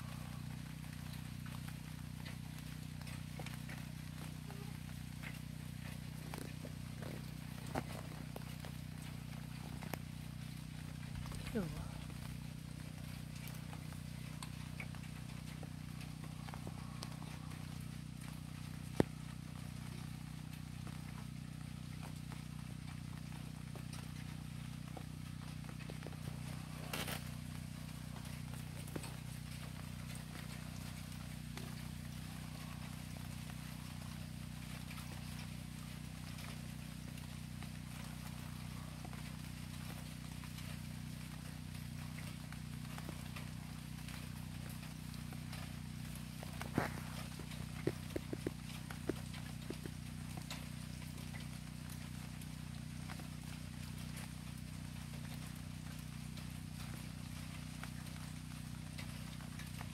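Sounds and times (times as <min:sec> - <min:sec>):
rain on a wooden deck: 0:00.0 - 0:59.9.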